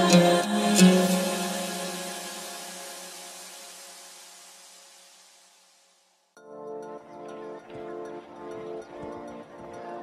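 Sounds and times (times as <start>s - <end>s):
deep house music: 0.0s - 4.0s.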